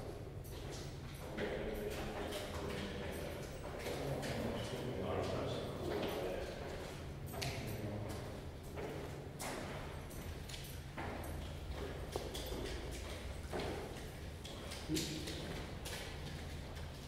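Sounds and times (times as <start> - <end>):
footsteps on stone floor: 8.7 - 17.0.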